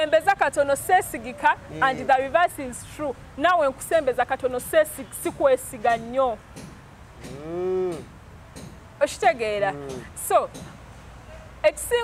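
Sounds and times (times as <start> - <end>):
low rising and falling call: 7.3 - 8.1.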